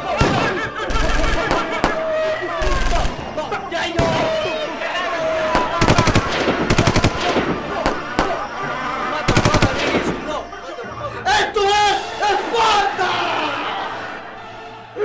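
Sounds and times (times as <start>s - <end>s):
men yelling loudly: 0.0s - 15.0s
voices: 0.0s - 15.0s
rapid sharp gunfire cracks: 0.2s - 3.2s, 5.5s - 8.5s, 9.3s - 10.3s.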